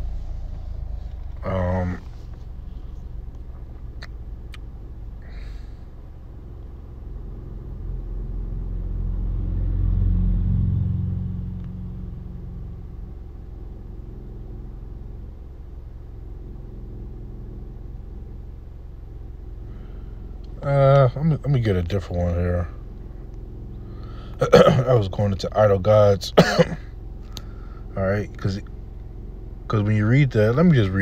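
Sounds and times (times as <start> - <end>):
low rumble: 0.0 - 25.9
steady low hum: 0.0 - 31.0.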